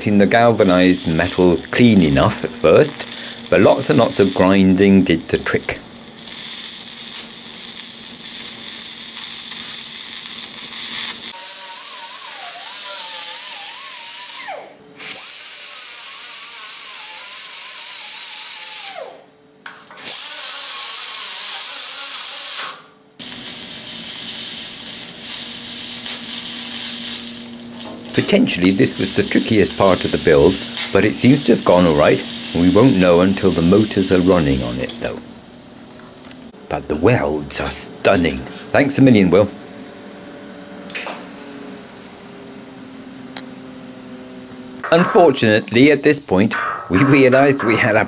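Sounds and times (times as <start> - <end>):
welding arc hissing: 0.0 - 19.1, 19.9 - 36.5, 44.8 - 48.0
angle grinder whining on metal: 0.0 - 19.2, 19.9 - 35.3.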